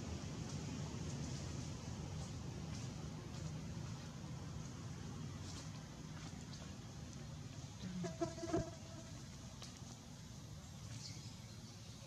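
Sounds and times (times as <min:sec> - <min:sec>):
flying insect buzzing: 0:07.9 - 0:09.2.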